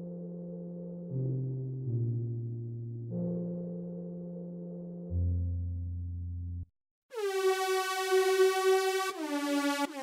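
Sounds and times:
bright buzzy synthesizer note: 0:07.2 - 0:10.0.

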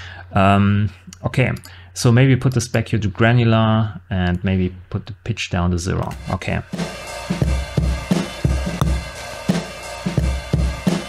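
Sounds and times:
acoustic drum kit loop: 0:06.1 - 0:11.0.

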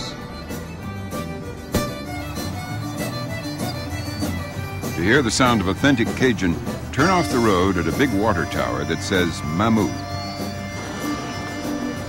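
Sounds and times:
fiddle-led music with beat: 0:00.0 - 0:12.0.

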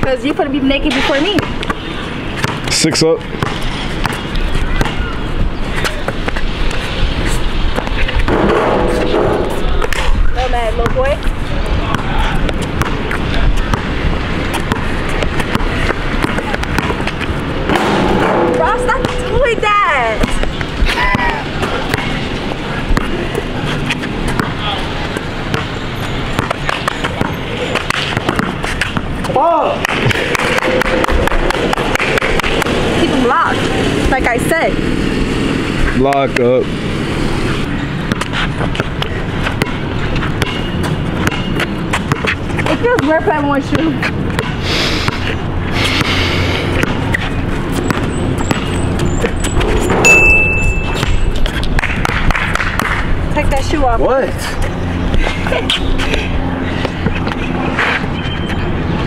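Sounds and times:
basketball bouncing on hard court: 0:03.4 - 0:05.1, 0:10.7 - 0:11.3, 0:11.9 - 0:22.2, 0:22.9 - 0:24.6, 0:25.4 - 0:29.2, 0:38.0 - 0:45.3, 0:46.0 - 0:47.1, 0:47.7 - 0:53.1
footsteps: 0:05.6 - 0:11.5, 0:12.4 - 0:21.0, 0:37.4 - 0:53.6, 0:54.4 - 0:59.0.

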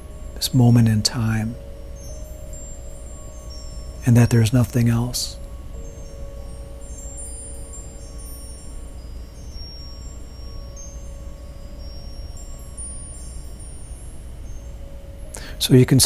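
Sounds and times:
high chime tones: 0:00.0 - 0:16.0
low drone: 0:00.0 - 0:16.0.

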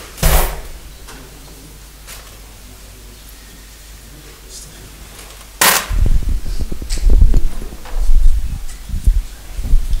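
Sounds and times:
microphone handling noise: 0:05.6 - 0:10.0.

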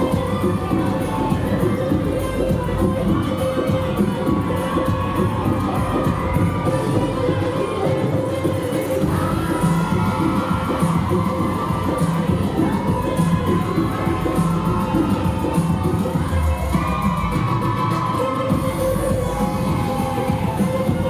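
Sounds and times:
loud bhangra music: 0:00.0 - 0:21.0
audience cheering: 0:09.0 - 0:21.0.

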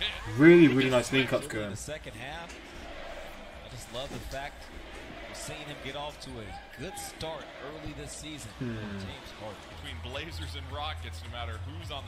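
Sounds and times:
man talking: 0:00.0 - 0:02.5, 0:05.3 - 0:12.0.

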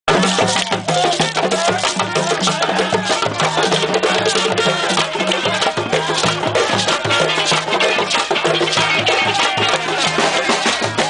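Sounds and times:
djembe drums: 0:00.1 - 0:11.0.

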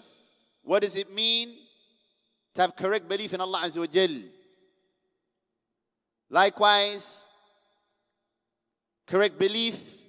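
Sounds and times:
man speaking: 0:00.6 - 0:01.8, 0:02.5 - 0:04.4, 0:06.3 - 0:07.4, 0:09.1 - 0:10.0.

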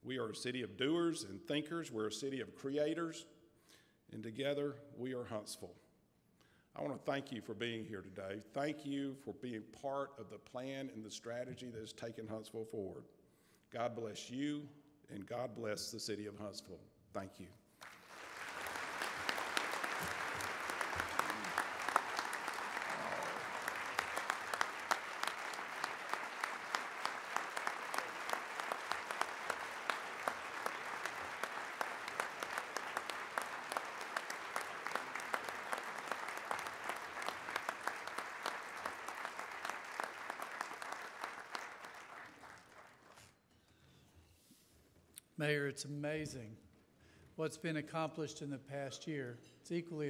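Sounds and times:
audience applauding: 0:17.8 - 0:43.3.

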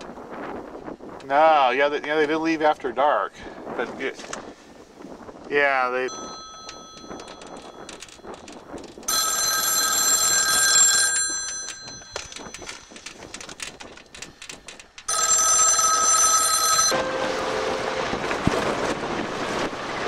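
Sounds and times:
payphone bell ringing: 0:06.0 - 0:13.3, 0:15.1 - 0:18.4
steady rushing noise: 0:16.9 - 0:20.0.

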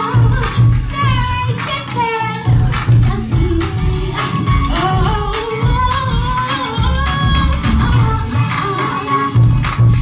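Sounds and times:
backing track with bass beat: 0:00.0 - 0:10.0
woman singing into a microphone: 0:00.0 - 0:10.0.

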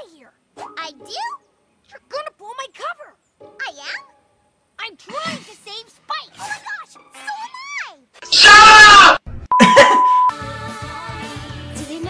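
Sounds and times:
background music with held notes: 0:03.2 - 0:04.8, 0:10.3 - 0:12.0
censor bleep tone: 0:09.5 - 0:10.4.

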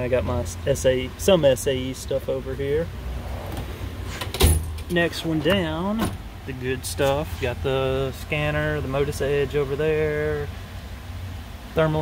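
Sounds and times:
tool drawer rolling on slides: 0:03.1 - 0:04.8.

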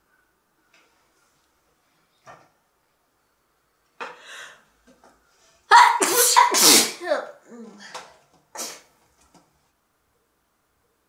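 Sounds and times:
woman sneezing: 0:05.7 - 0:07.1.

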